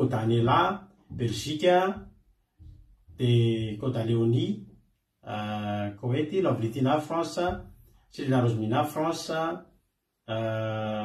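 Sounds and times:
man speaking: 0:00.0 - 0:02.0, 0:03.2 - 0:09.6, 0:10.3 - 0:11.0.

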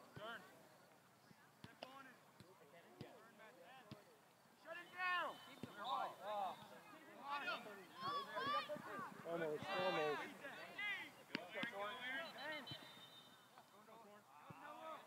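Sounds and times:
players shouting: 0:04.6 - 0:13.4.

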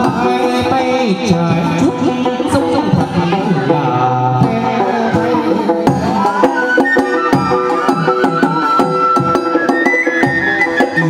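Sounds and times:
high held melody line: 0:00.0 - 0:11.0.

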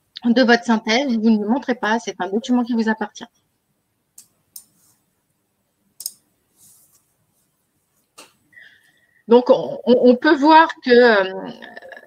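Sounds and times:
computer mouse click: 0:06.0 - 0:06.2.

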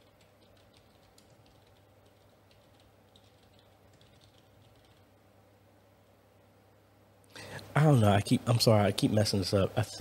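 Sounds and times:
typing on computer keyboard: 0:00.0 - 0:05.1
low steady hum: 0:00.0 - 0:10.0.

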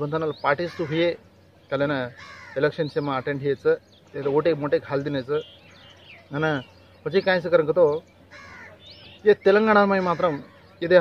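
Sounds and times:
man talking: 0:00.0 - 0:05.5, 0:06.3 - 0:08.0, 0:09.2 - 0:11.0
bird call: 0:05.0 - 0:11.0.

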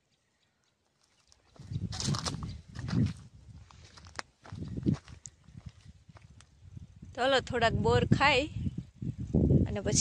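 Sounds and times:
footsteps crunching on stony ground: 0:00.8 - 0:06.6.

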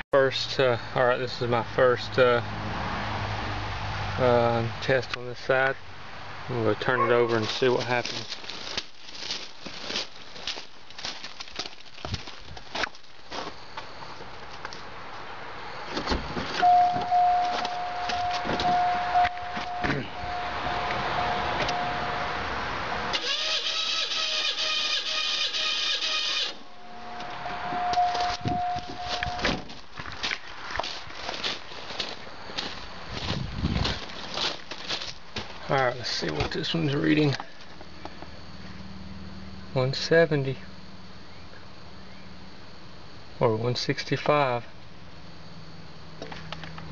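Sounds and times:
footsteps on gravel: 0:07.2 - 0:20.0, 0:27.9 - 0:38.3
car warning chime: 0:16.6 - 0:22.3, 0:26.1 - 0:29.5
engine cranking without firing: 0:23.1 - 0:26.7.

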